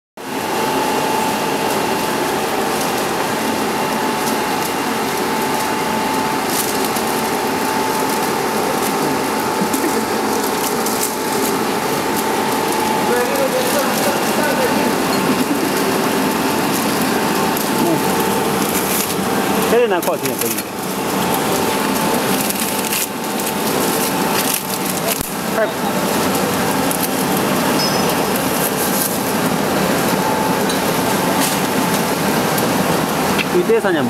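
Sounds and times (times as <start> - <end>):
machine running with whine: 0.2 - 34.0.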